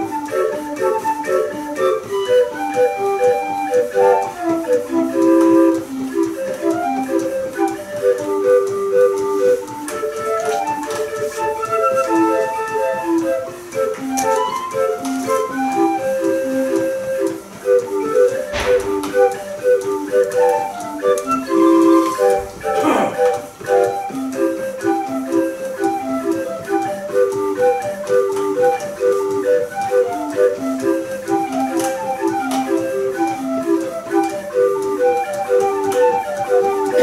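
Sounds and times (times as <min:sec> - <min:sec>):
street organ playing tune: 0:00.0 - 0:37.0.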